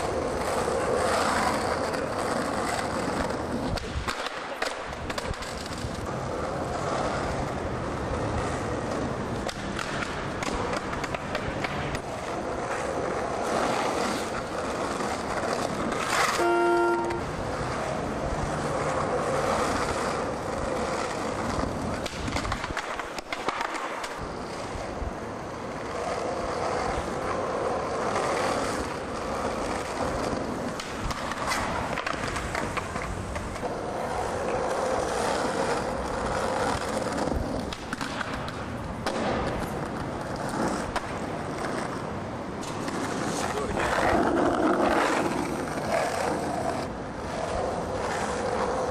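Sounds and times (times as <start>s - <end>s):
skateboard clacks: 0.0s - 48.9s
skateboard wheels rolling on asphalt: 0.0s - 48.9s
brief pitched tone: 16.3s - 17.3s.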